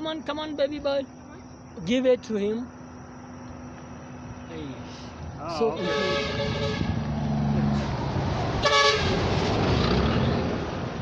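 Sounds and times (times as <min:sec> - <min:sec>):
vehicle passing: 0:02.6 - 0:11.0
horn toot: 0:05.6 - 0:07.1, 0:08.6 - 0:09.3.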